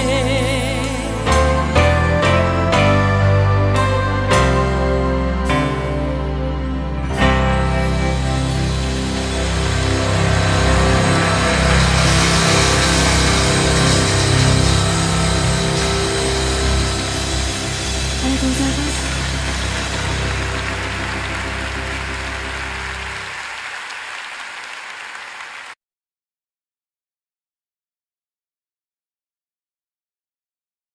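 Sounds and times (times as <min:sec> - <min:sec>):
song chords with low bass: 0:00.0 - 0:23.3.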